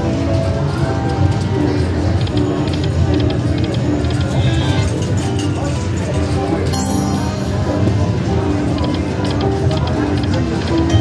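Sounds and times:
casino background noise: 0:00.0 - 0:11.0
electronic slot machine music: 0:00.0 - 0:11.0.

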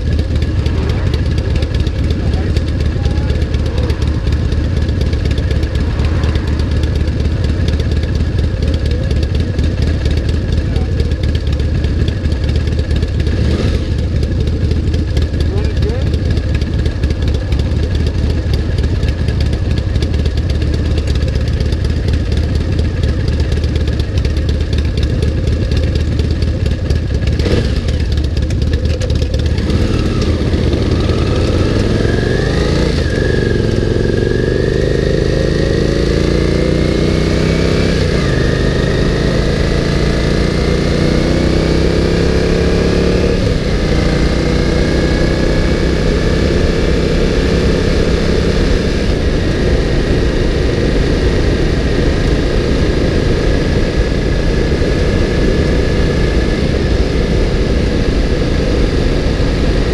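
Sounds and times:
motorcycle engine: 0:00.0 - 0:59.9.

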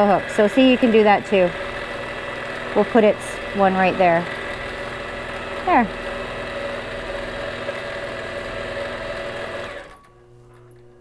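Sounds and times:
quilting machine stitching: 0:00.0 - 0:10.1.

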